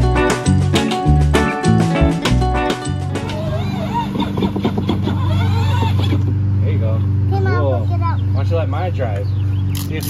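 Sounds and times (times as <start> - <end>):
low motor hum: 2.0 - 10.0.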